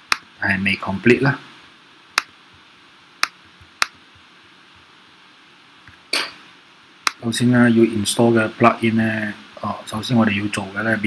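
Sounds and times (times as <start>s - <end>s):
sharp mouse clicks: 2.2s - 2.4s, 3.2s - 4.0s, 7.0s - 7.2s.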